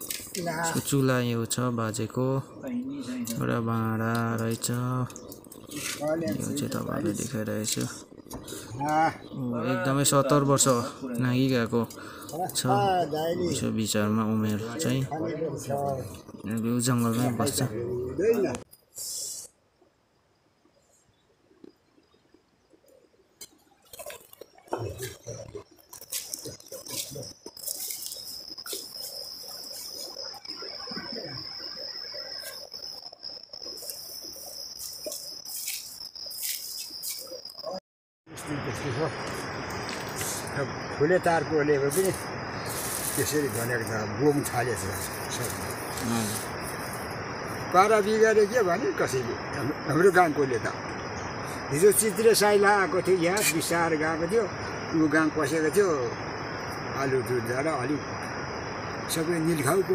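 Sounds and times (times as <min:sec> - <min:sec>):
insects chirring: 0:00.0 - 0:59.9
elderly man speaking: 0:00.4 - 0:05.2, 0:05.8 - 0:08.0, 0:08.7 - 0:18.7, 0:43.0 - 0:46.5
rustling in undergrowth: 0:33.7 - 0:37.5, 0:42.0 - 0:47.2.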